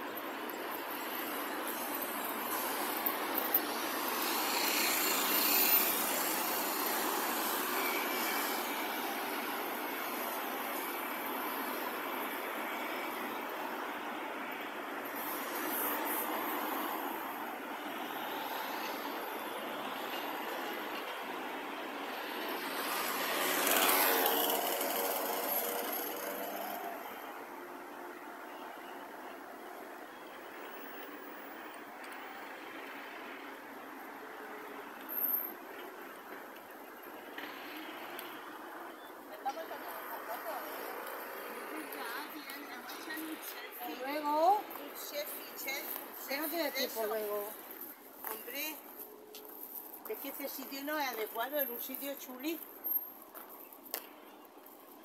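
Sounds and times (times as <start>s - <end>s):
passing cars and vans: 0.0s - 55.0s.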